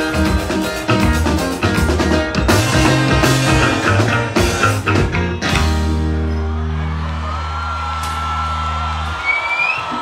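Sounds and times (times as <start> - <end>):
band chord on bass and keyboard: 0.0 - 6.7
long high whistle: 9.2 - 10.0.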